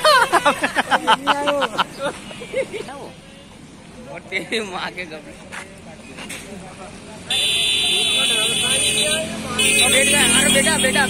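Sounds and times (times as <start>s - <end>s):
vehicle horn blaring: 7.3s - 11.0s.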